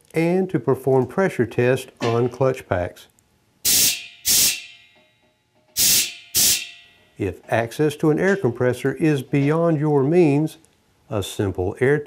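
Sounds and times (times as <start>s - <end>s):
compressed air blasts hissing: 3.6s - 4.6s, 5.8s - 6.7s.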